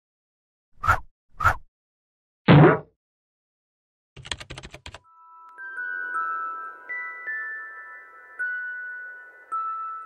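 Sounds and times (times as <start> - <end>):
keyboard typing clicks: 4.2 - 5.0.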